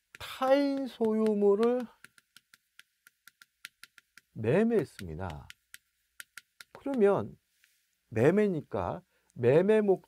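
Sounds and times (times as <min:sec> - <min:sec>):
chalk tapping on a blackboard: 0:00.0 - 0:07.8.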